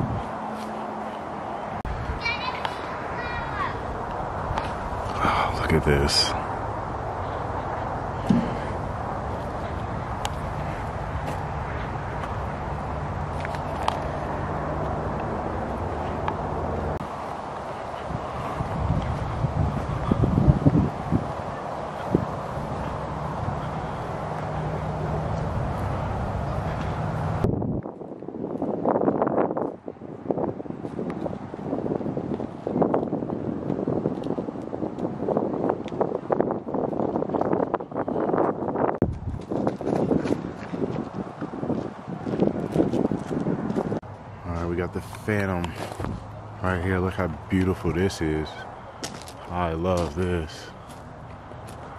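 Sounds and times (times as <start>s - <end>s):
wind buffeting microphone: 0.0s - 0.5s, 1.6s - 51.9s
low mechanical drone: 3.8s - 28.4s.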